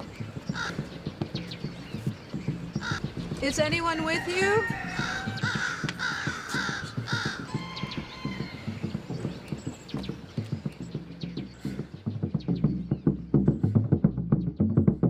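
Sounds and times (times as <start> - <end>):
rhythmic percussive film music: 0.0 - 15.0
crow cawing: 0.4 - 1.0, 2.7 - 9.2.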